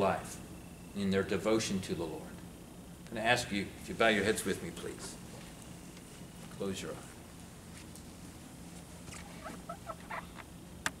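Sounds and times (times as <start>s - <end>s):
steady low hum: 0.0s - 11.0s
short squeaks: 9.0s - 10.4s.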